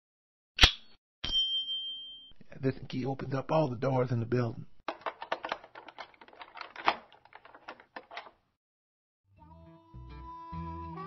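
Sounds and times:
key rattling in door lock: 4.9s - 8.4s.

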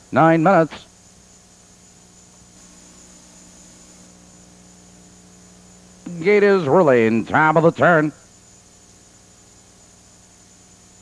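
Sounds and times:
faint electrical hum: 0.0s - 11.0s
recording hiss: 0.0s - 11.0s.

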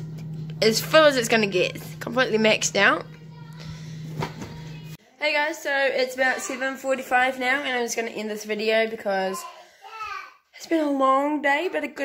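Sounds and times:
fridge-freezer humming: 0.0s - 5.0s.

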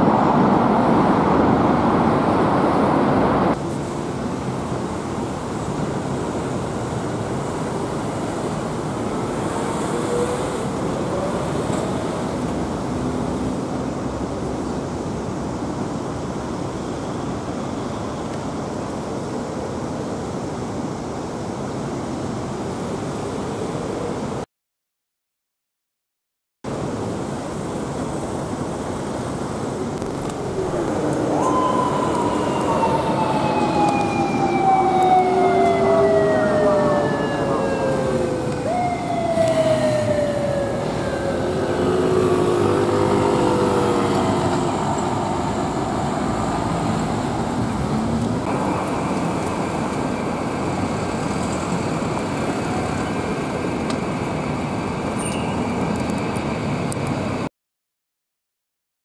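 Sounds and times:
city road traffic: 0.0s - 24.4s, 26.7s - 57.5s
police motorcycle siren wailing: 30.2s - 44.6s.

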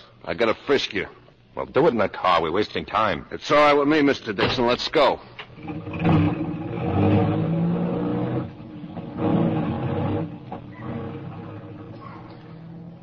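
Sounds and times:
car engine revving: 5.6s - 13.0s.

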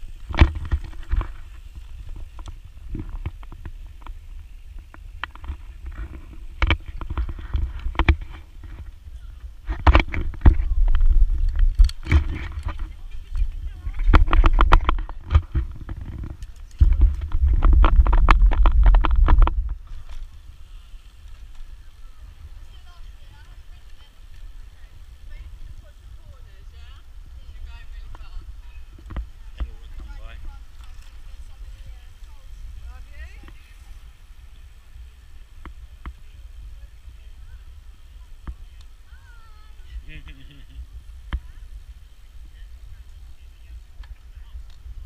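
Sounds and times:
bike clicks and rattles: 0.0s - 25.4s, 28.0s - 36.6s
wind buffeting microphone: 0.0s - 45.0s.

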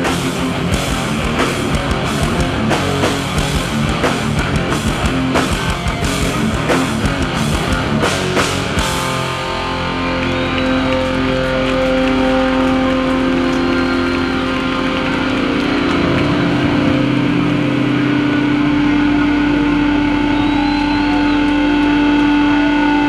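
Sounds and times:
amplifier feedback and hum: 0.0s - 23.0s.

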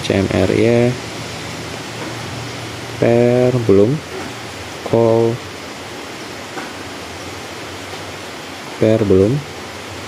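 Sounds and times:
steady broadband hiss: 0.0s - 10.0s.

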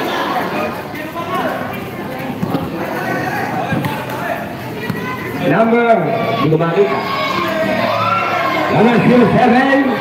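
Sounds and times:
crowd chatter: 0.0s - 10.0s
basketball bouncing on concrete: 2.3s - 2.8s, 3.6s - 4.2s, 4.8s - 5.2s.

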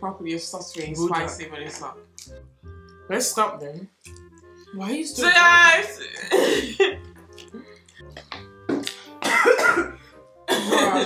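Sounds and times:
quiet background music: 0.0s - 11.0s
person coughing: 6.0s - 7.0s, 9.2s - 11.0s.

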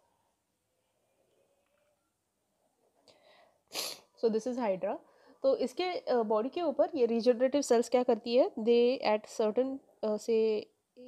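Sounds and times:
person's sharp breath: 3.1s - 4.2s
faint hiss: 3.1s - 4.5s.

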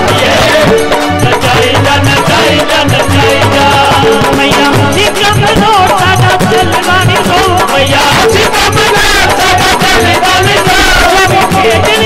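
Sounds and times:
devotional band music: 0.0s - 12.0s
fast percussion beat: 0.0s - 12.0s.

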